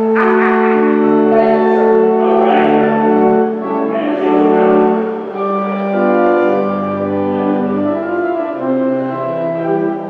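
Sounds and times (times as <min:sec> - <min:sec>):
church organ chords: 0:00.0 - 0:10.0.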